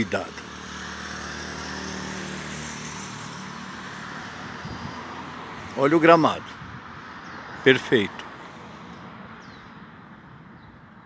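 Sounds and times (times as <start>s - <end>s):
vehicle engine hum: 0.0s - 10.3s
road noise: 0.0s - 11.0s.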